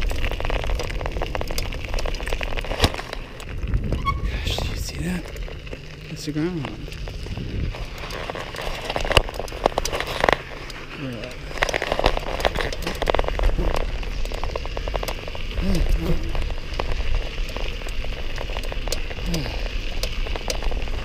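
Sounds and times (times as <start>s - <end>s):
wind rumble on microphone: 0.0s - 6.0s, 6.6s - 10.4s
bicycle tyres rolling on gravel: 0.0s - 21.0s.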